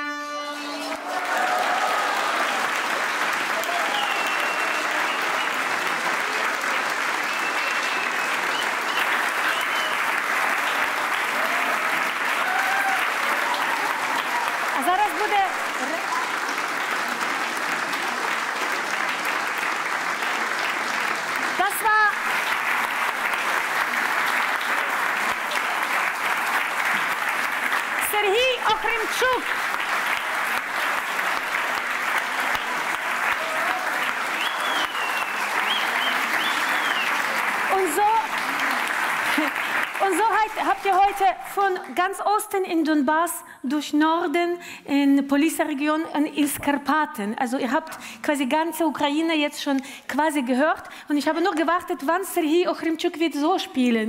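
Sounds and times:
audience applauding: 0:00.4 - 0:42.1.

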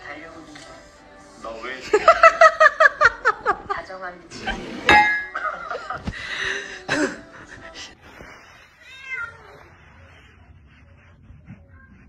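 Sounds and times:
cat meowing: 0:08.7 - 0:09.8.

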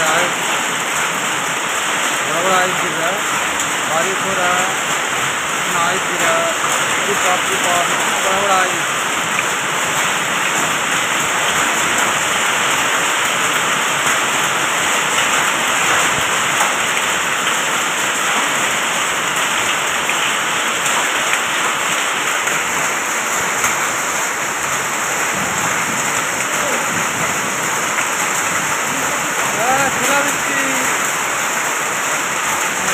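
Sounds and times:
hail and heavy rain falling: 0:00.0 - 0:32.9.

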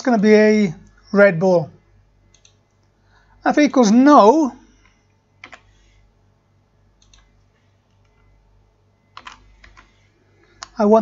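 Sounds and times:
keyboard keystrokes: 0:07.0 - 0:07.3, 0:09.1 - 0:09.9.

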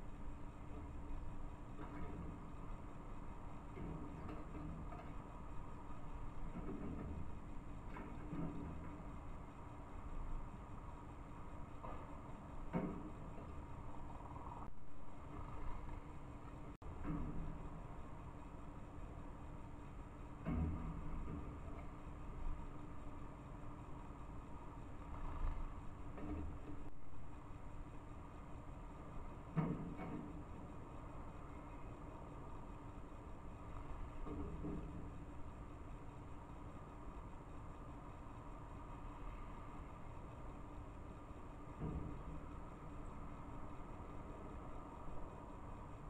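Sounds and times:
faint steady hum: 0:00.0 - 0:46.0
low outdoor rumble: 0:00.0 - 0:46.0.

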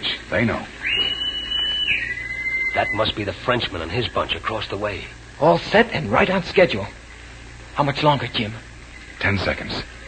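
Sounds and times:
two-note whistle signal: 0:00.8 - 0:03.2.

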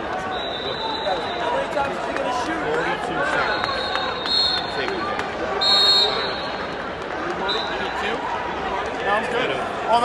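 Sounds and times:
crowd chatter: 0:00.0 - 0:10.0
shrill whistle blast: 0:00.3 - 0:01.6, 0:03.4 - 0:04.8, 0:05.6 - 0:06.6.

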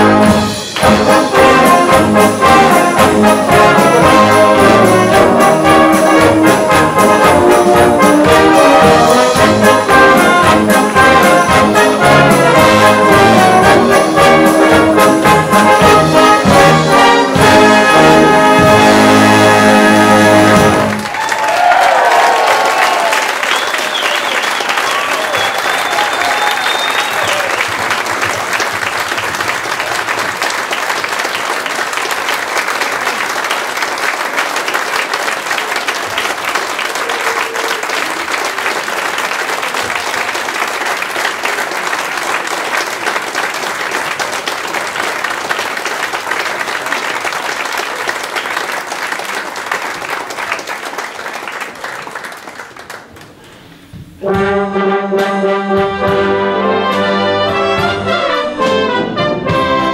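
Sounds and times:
audience applauding: 0:00.0 - 0:53.6
voices cheering: 0:21.0 - 0:27.8, 0:36.7 - 0:38.7.

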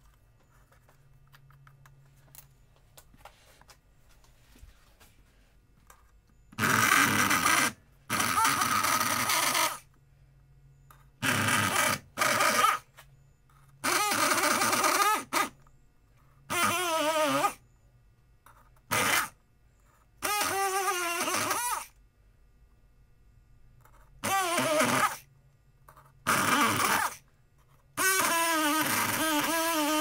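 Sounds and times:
electric pick gun buzzing: 0:06.5 - 0:09.8, 0:11.2 - 0:12.9.

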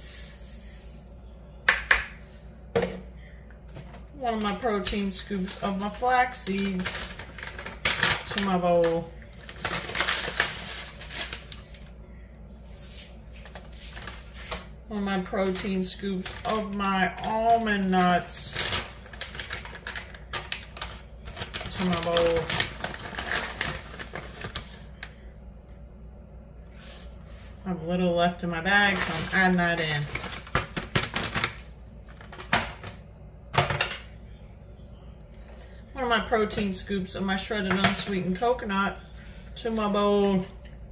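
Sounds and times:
plastic bag rustling: 0:03.8 - 0:11.9, 0:12.8 - 0:14.8, 0:15.4 - 0:25.0, 0:28.7 - 0:33.0.

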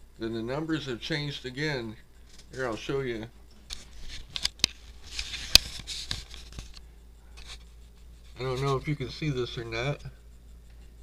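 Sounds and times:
small ticks: 0:03.4 - 0:11.0
camera handling rustling: 0:03.7 - 0:06.8.

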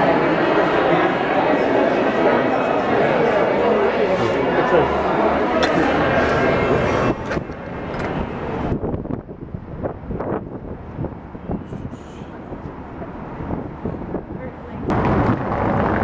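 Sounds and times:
crowd chatter: 0:00.0 - 0:09.1, 0:11.0 - 0:16.0
distant traffic: 0:00.0 - 0:16.0.

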